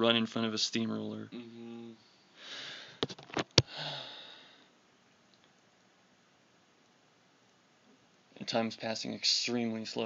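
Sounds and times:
low hum with breathy exhale: 1.3 - 3.0, 3.6 - 4.8.

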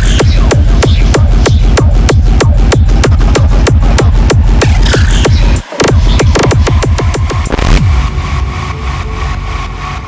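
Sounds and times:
low rumbling drone: 7.2 - 10.0.

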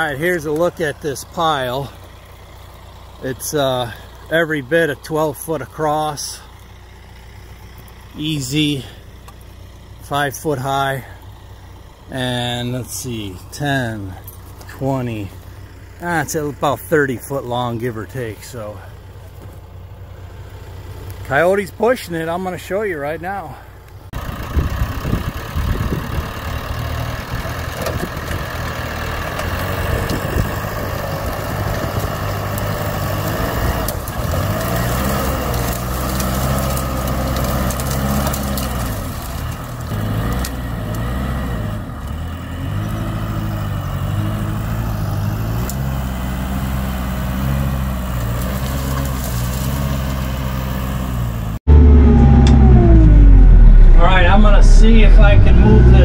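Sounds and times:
tractor diesel engine under load: 0.0 - 56.0.

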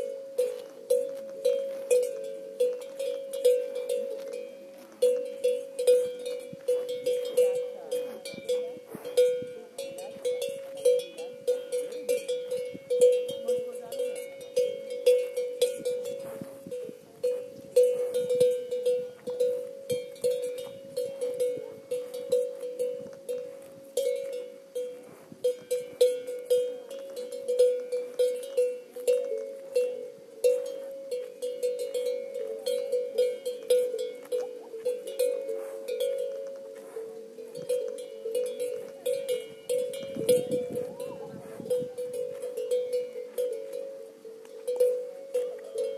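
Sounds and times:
cowbell clanking: 0.0 - 45.9.

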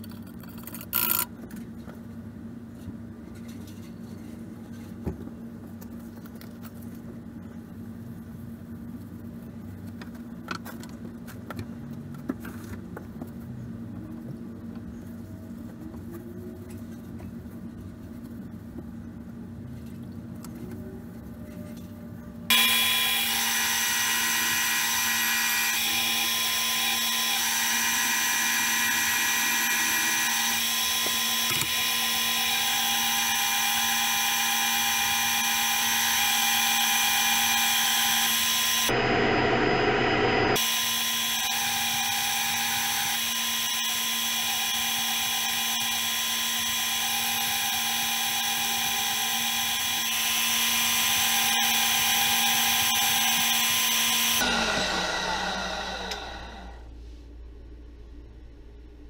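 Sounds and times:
band saw cutting wood: 22.5 - 56.8.

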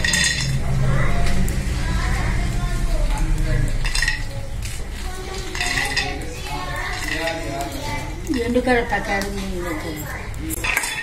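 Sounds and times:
low steady hum: 0.0 - 11.0
peanuts rattling in a pan: 3.2 - 11.0.

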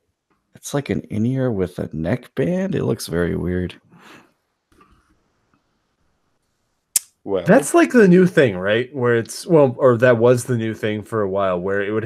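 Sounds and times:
sharp click: 7.0 - 7.2.

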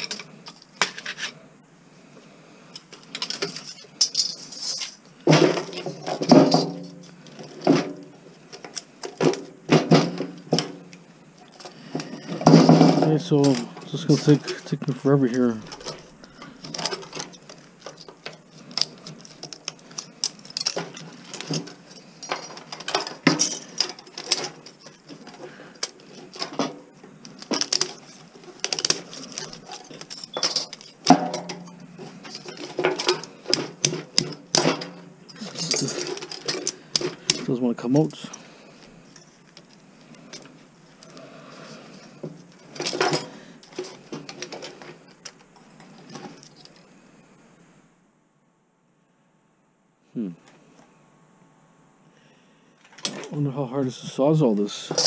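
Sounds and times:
screwdriver clinking on metal: 16.7 - 26.6, 27.2 - 37.4.

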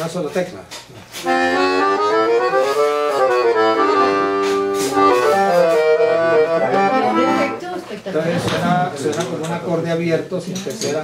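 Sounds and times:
piano accordion held notes: 1.2 - 7.6.

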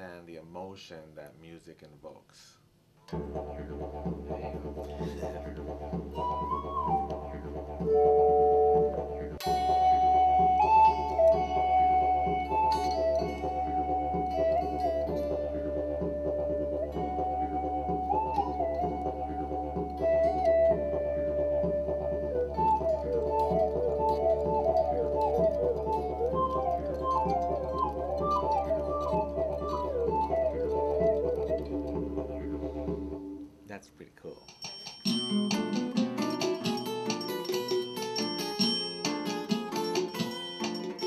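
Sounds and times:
guitar synthesizer melody: 3.1 - 33.3, 35.1 - 41.0.

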